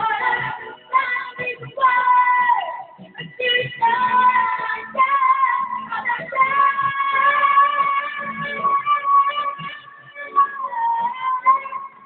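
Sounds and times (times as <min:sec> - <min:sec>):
boy singing into microphone: 0:00.0 - 0:12.0
karaoke backing track: 0:00.0 - 0:12.0.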